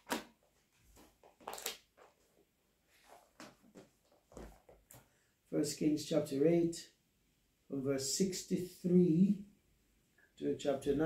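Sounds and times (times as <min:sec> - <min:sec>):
book pages rustling: 0:00.0 - 0:05.1.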